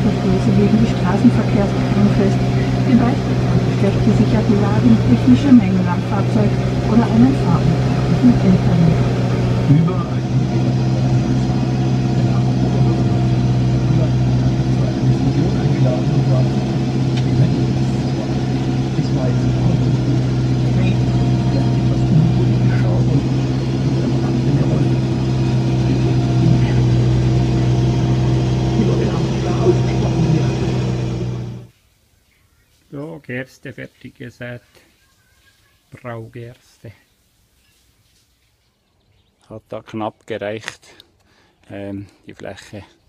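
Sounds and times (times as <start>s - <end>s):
tractor diesel engine drone: 0.0s - 31.7s.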